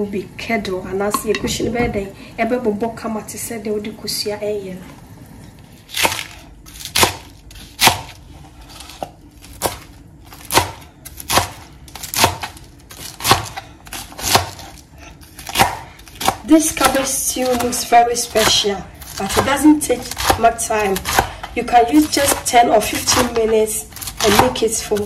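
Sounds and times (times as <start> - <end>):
knife chopping on cutting board: 13.2 - 17.7, 18.4 - 25.0.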